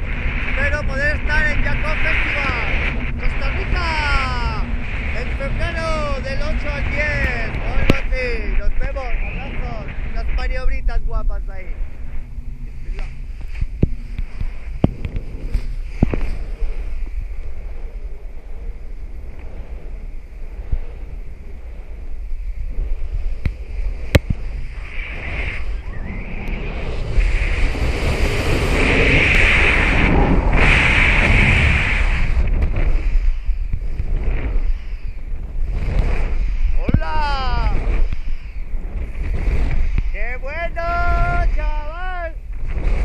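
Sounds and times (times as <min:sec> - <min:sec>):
wind rushing over microphone: 0:00.0 - 0:43.0.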